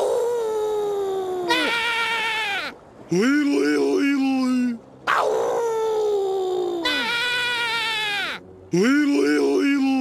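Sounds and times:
cartoon voice wailing: 0.2 - 2.7, 5.5 - 8.4.

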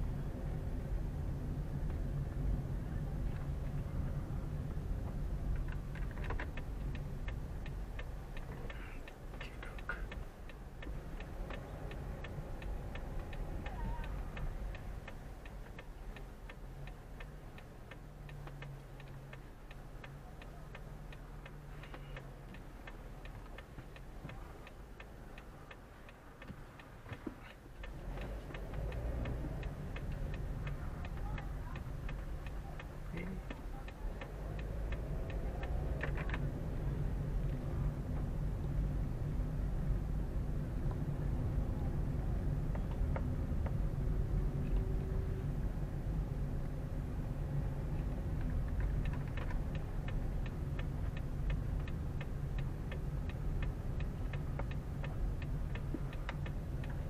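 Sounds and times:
low engine hum: 0.0 - 57.0
turn signal ticking: 0.0 - 57.0.

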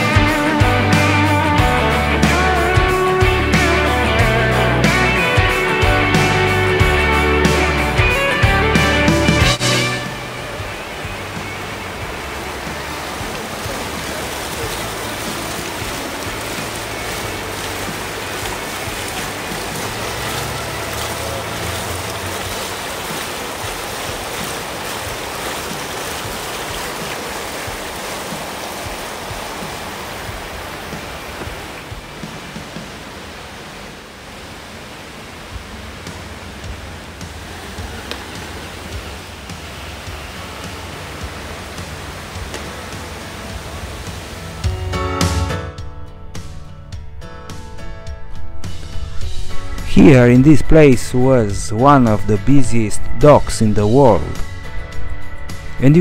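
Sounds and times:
fountain water splashing into pool: 0.0 - 45.4.

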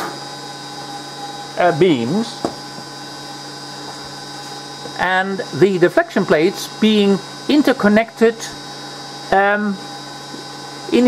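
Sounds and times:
electrical hum: 0.0 - 11.0
high whining tones: 0.0 - 11.0.

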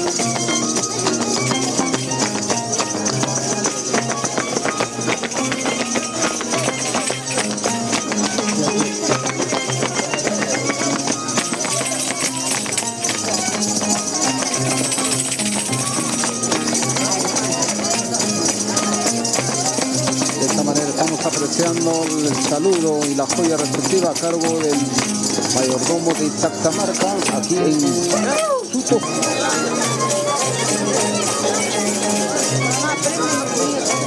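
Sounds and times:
crowd chatter: 0.0 - 34.0
harp playing festival music: 0.0 - 34.0.

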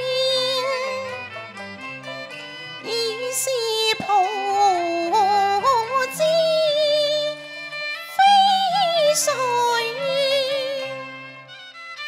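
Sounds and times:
instrumental accompaniment: 0.0 - 12.0
woman singing opera melisma: 2.8 - 7.4, 8.1 - 11.0.

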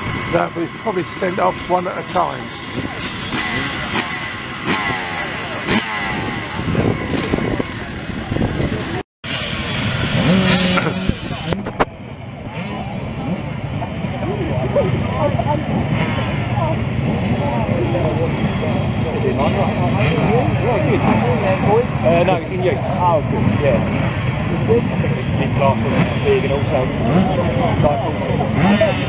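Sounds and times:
motorcycle engines revving: 0.0 - 29.0.

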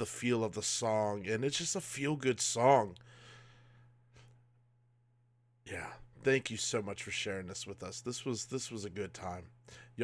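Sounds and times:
low steady hum: 0.0 - 10.0
man breathing out: 3.0 - 4.4.

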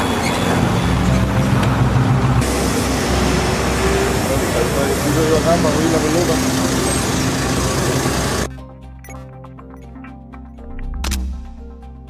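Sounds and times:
outro jingle: 0.0 - 8.5
truck engine hum: 0.0 - 8.5.

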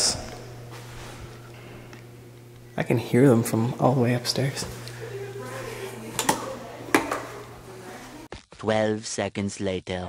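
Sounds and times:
low electrical hum: 0.0 - 8.3.

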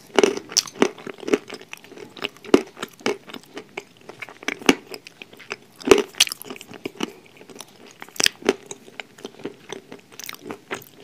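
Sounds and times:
chewing with crisp crunches: 0.0 - 11.0.

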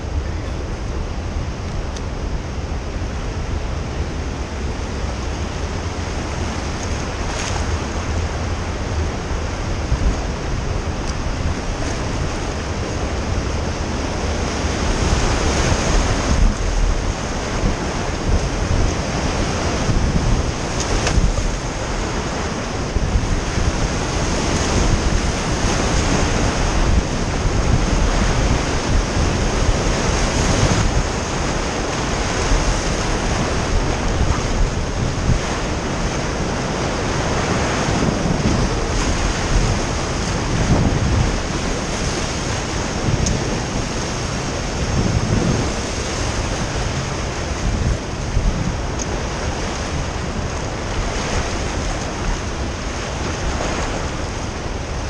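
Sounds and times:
whitewater rapids rushing: 0.0 - 55.0.

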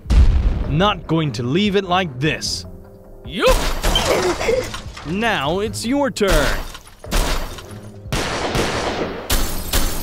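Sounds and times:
gunfire blast sound effects: 8.1 - 10.0.

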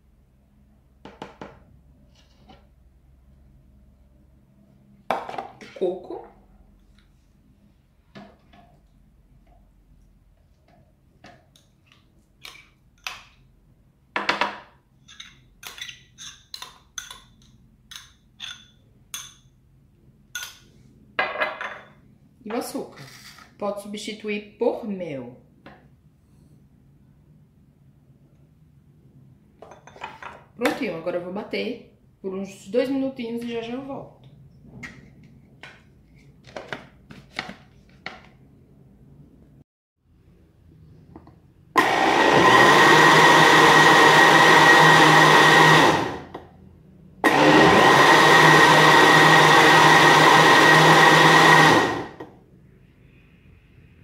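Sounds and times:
metal spoon clinking on glass bowl: 15.1 - 19.6.

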